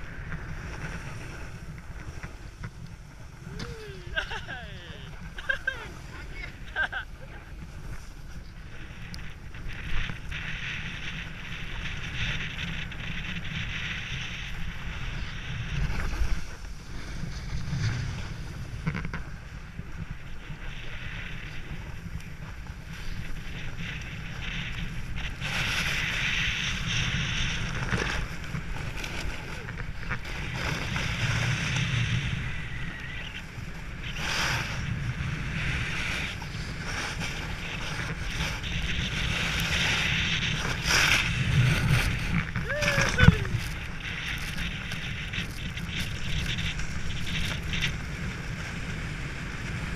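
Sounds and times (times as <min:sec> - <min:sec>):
snowboard scraping on snow: 0:00.0 - 0:49.9
wind rumble on microphone: 0:00.0 - 0:49.9.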